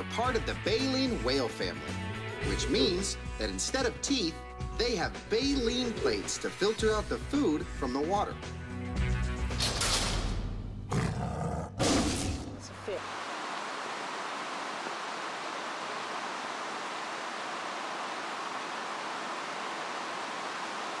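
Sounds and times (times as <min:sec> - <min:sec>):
music: 0:00.0 - 0:10.9
person speaking: 0:02.4 - 0:04.1
stream rushing over rocks: 0:12.9 - 0:21.0.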